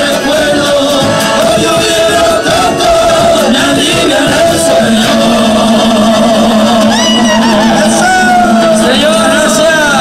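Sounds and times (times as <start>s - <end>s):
folk band with bandoneon and violin: 0.0s - 10.0s.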